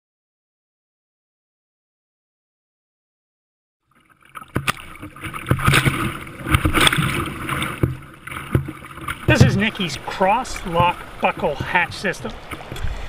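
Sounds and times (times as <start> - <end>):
paddle blades splashing: 3.8 - 13.0
water sloshing against hull: 3.9 - 13.0.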